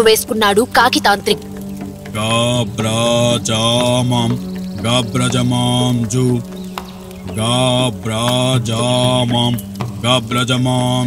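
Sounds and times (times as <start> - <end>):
steady low drone: 0.0 - 11.0
man chanting: 2.1 - 6.5, 7.3 - 11.0.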